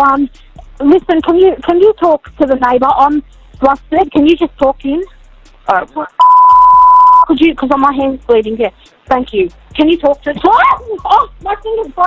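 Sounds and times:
censor bleep tone: 0:06.2 - 0:07.3.

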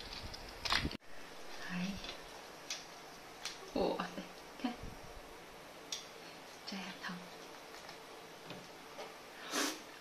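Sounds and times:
prawn shell cracking: 0:00.0 - 0:01.0.

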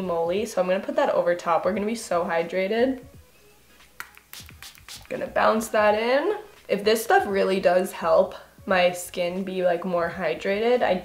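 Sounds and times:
spray bottle hissing puffs: 0:04.2 - 0:05.2.

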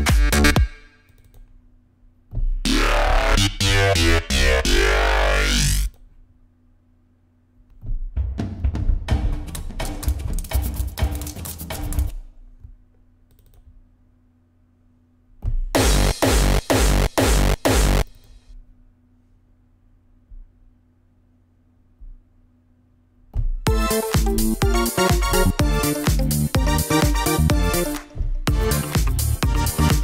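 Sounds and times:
heavy bass: 0:00.0 - 0:00.9, 0:02.4 - 0:05.9, 0:15.6 - 0:18.1, 0:23.6 - 0:30.0
sequenced synth pattern: 0:02.6 - 0:05.9, 0:23.7 - 0:30.0
sweeping synth tones: 0:02.6 - 0:05.9
choppy rapidly repeated hits: 0:08.4 - 0:12.2, 0:15.8 - 0:18.1, 0:23.7 - 0:30.0.

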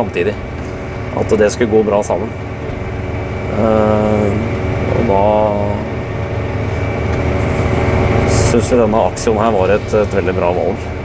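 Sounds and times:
faint high whine: 0:00.0 - 0:11.0
tractor engine drone: 0:00.0 - 0:11.0.

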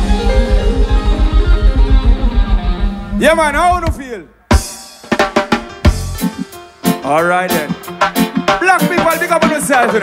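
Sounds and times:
reggae band playing: 0:00.0 - 0:10.0.

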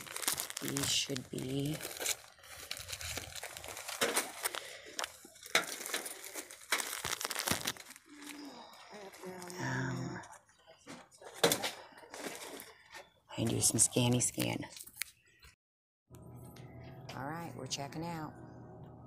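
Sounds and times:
plastic packages crinkling: 0:00.0 - 0:10.4.

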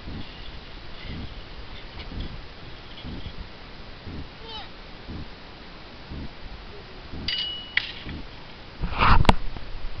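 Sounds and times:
breathy rush of noise: 0:00.0 - 0:09.2.

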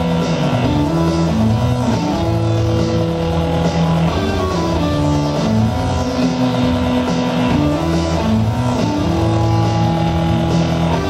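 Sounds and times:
rock band electric guitar and bass: 0:00.0 - 0:11.0.

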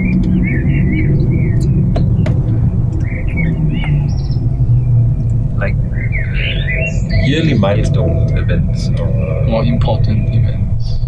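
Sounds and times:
small birds chirping: 0:00.0 - 0:11.0
steady low rumble: 0:00.0 - 0:11.0.

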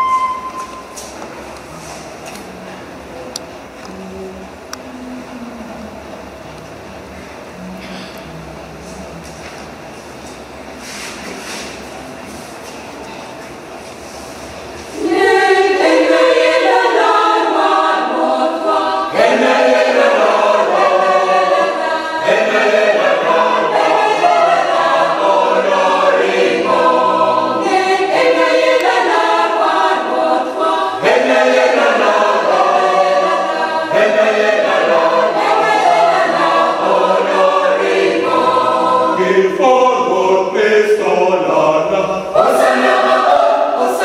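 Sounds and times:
church choir singing a cappella: 0:14.8 - 0:44.0.

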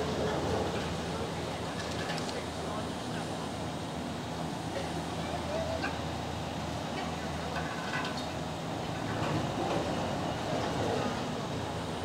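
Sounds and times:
gondola lift hum and rumble: 0:00.0 - 0:12.0
faint indistinct voices: 0:00.7 - 0:06.2.

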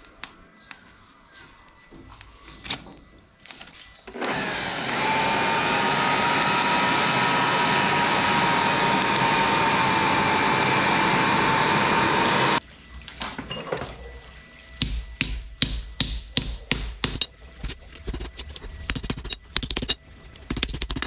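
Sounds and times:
electric air blower running: 0:04.1 - 0:12.6.

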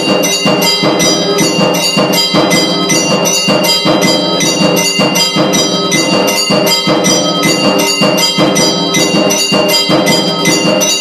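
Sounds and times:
temple bells ringing: 0:00.0 - 0:11.0.

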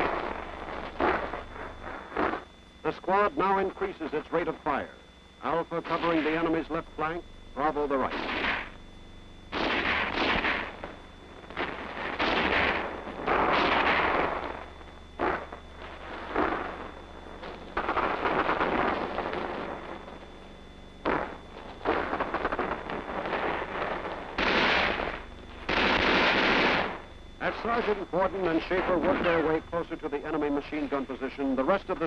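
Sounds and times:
rifle gunfire: 0:08.1 - 0:08.7, 0:09.5 - 0:10.9, 0:11.5 - 0:14.6, 0:17.8 - 0:19.8, 0:21.0 - 0:27.0.

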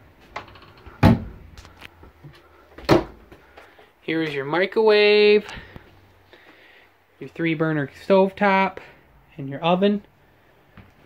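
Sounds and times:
cabinet doors knocking shut: 0:01.0 - 0:01.4.

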